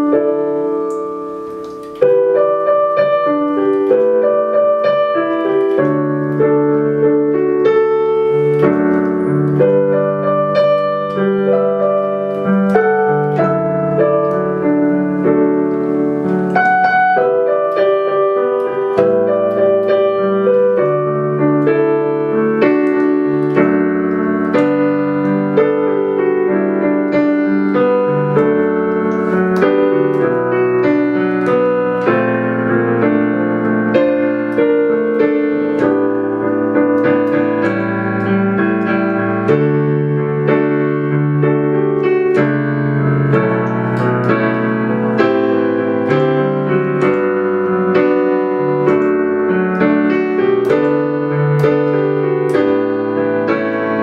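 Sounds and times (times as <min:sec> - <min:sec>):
digital piano slow ballad: 0:00.0 - 0:54.0.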